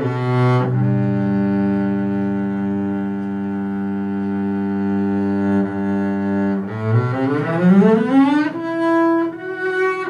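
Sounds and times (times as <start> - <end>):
bowed double bass: 0.0 - 10.0.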